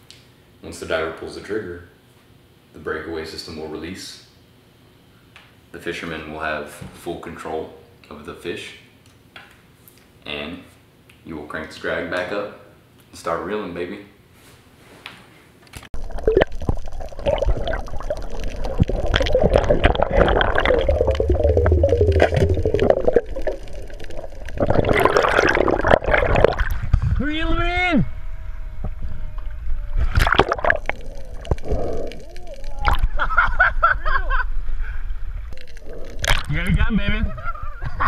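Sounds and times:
water rushing and sloshing: 16.0s - 27.2s
people shouting and whooping: 32.2s - 34.2s.

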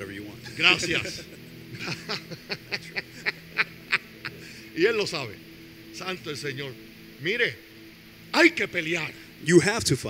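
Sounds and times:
men laughing: 0.4s - 4.9s.

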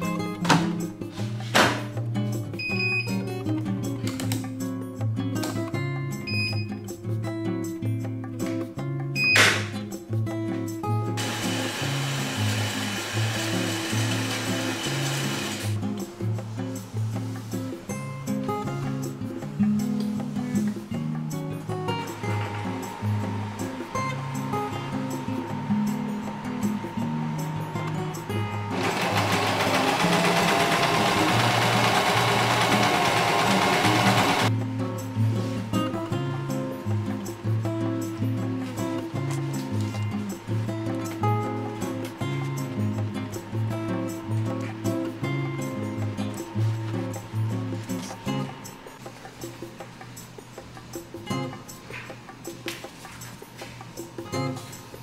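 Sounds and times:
background music with bass line: 0.0s - 55.0s
washing machine rushing: 11.2s - 15.8s, 22.0s - 34.5s
sewing machine stitching fabric: 28.7s - 34.5s.

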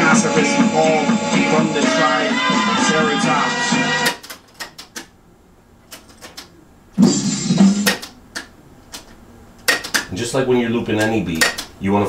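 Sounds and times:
hip-hop beat from cassette: 0.0s - 4.2s, 7.0s - 8.1s
tape deck key clicks: 7.9s - 10.1s, 11.4s - 11.7s.

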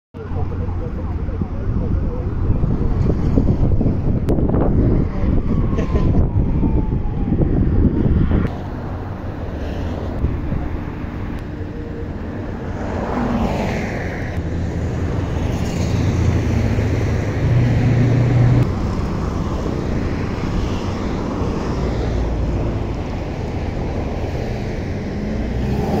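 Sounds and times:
vehicle engine hum: 0.2s - 26.0s
vehicles passing on highway: 0.2s - 26.0s
wind rumble on microphone: 0.2s - 26.0s.

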